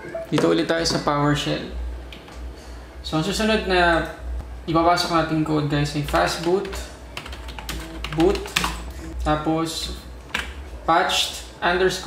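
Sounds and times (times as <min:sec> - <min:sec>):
computer keyboard typing: 0:06.1 - 0:09.2.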